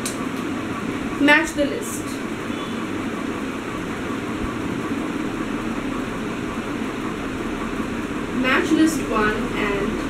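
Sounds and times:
steady background hum and hiss: 0:00.0 - 0:10.0.

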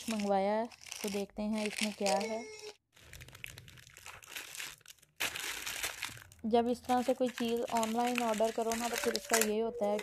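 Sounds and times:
plastic bag crinkling and tearing: 0:00.0 - 0:10.0.

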